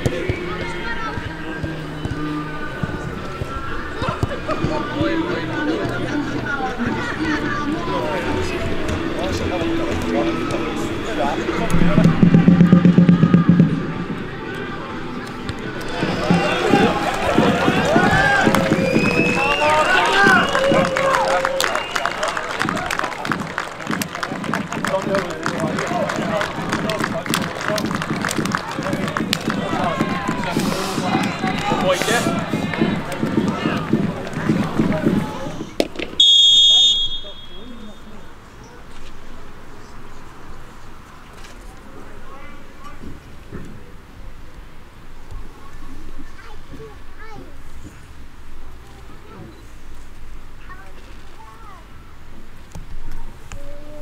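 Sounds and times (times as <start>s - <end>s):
crowd voices: 0.0s - 54.0s
people clapping: 15.2s - 36.1s
people shouting: 15.8s - 21.6s
pea whistle blast: 36.2s - 38.2s.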